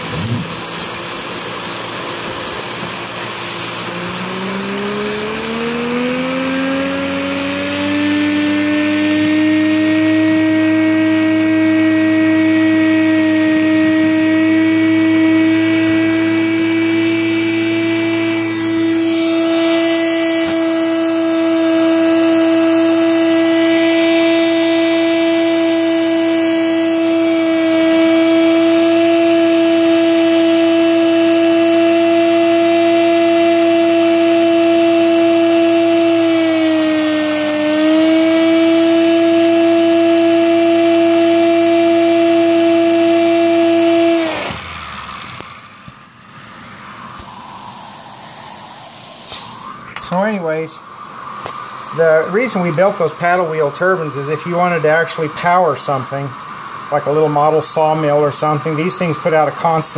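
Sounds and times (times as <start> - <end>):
rush of sucked air: 0.0 - 4.6, 17.4 - 22.0, 44.6 - 59.8
high-pitched turbine whine: 0.0 - 59.9.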